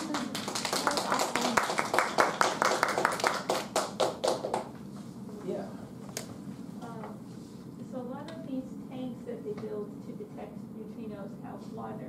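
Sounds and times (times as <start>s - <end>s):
small audience applause: 0.0s - 4.7s.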